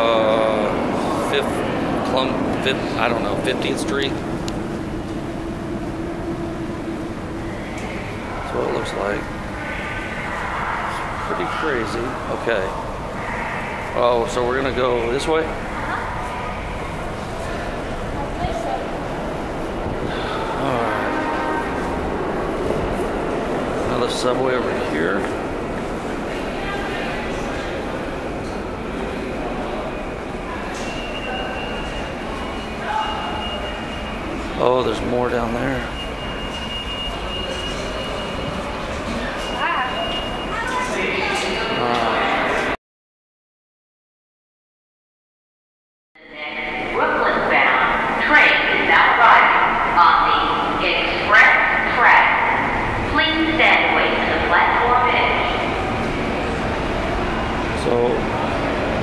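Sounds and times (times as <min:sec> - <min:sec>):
indistinct voices echoing: 0:00.0 - 0:42.8, 0:46.2 - 0:59.0
subway station din: 0:00.0 - 0:42.8, 0:46.2 - 0:59.0
trains rumbling in tunnels: 0:00.0 - 0:42.8, 0:46.2 - 0:59.0.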